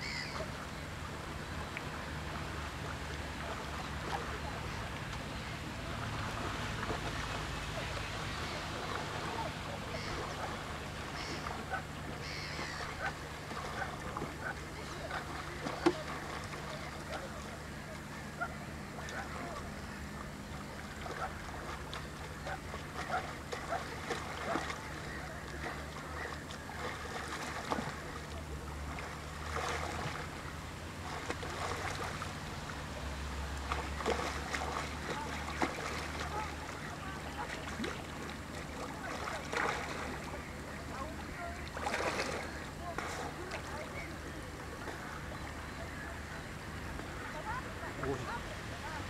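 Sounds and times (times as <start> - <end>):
small waves lapping against rocks: 0.0 - 49.0
little splashes and clicks: 12.7 - 19.7, 20.8 - 30.4, 33.5 - 44.0.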